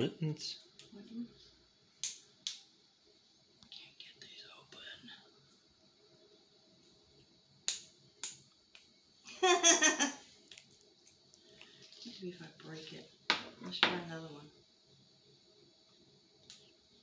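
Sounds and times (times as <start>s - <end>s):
person laughing: 9.3s - 10.2s.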